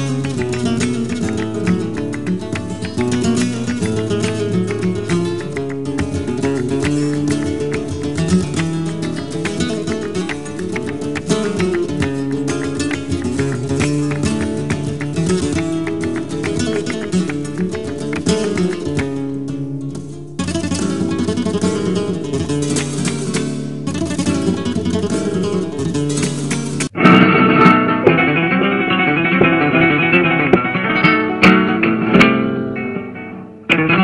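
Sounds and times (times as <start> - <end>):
flamenco guitar playing: 0.0 - 34.0.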